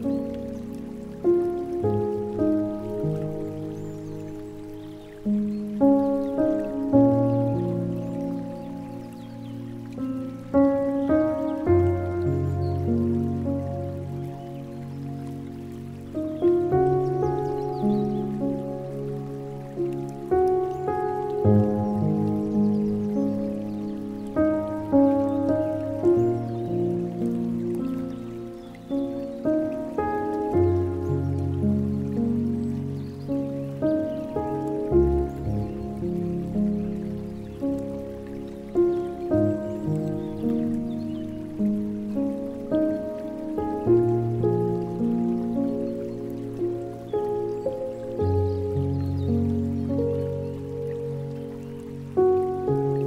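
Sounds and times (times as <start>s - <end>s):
patter of falling water: 0.0s - 53.0s
slow solo piano music: 0.0s - 53.0s.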